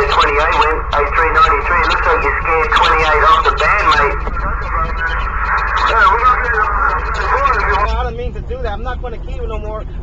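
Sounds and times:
garbled voice over radio: 0.0s - 10.0s
low hum: 0.0s - 10.0s.

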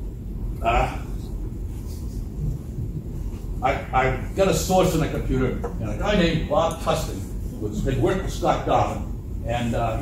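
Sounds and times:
low rumble of room noise: 0.0s - 10.0s.

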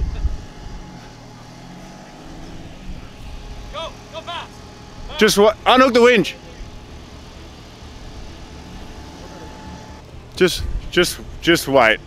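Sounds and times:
engine idling low rumble: 0.0s - 12.0s.

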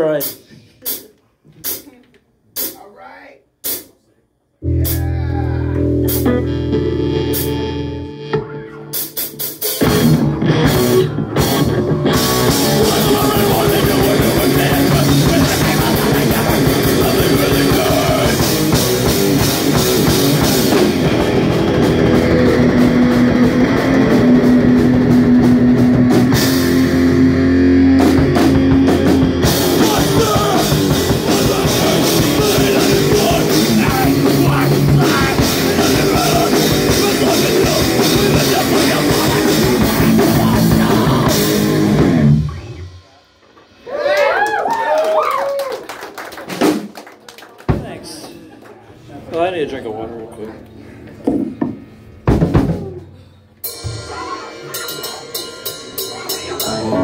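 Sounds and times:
drum kit: 0.0s - 4.0s, 4.6s - 45.0s, 46.4s - 47.0s, 47.7s - 48.3s, 51.2s - 57.0s
distorted electric guitars: 4.6s - 44.0s, 51.6s - 57.0s
rock band playing loudly: 4.6s - 44.1s, 51.5s - 57.0s
bass guitar: 4.6s - 45.0s, 50.6s - 57.0s
crowd whooping and clapping: 43.8s - 47.8s.

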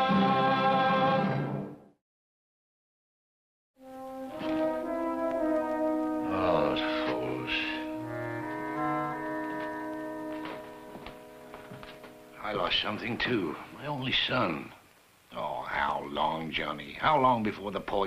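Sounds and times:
orchestral brass chords: 3.8s - 12.4s.

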